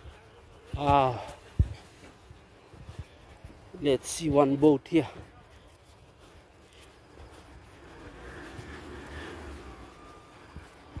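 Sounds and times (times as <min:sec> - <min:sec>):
distant engine rumble: 0:06.6 - 0:11.0.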